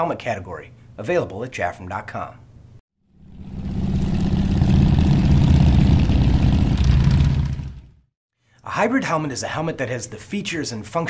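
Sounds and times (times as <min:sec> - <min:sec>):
engine pulsing rumble: 0:03.2 - 0:08.0.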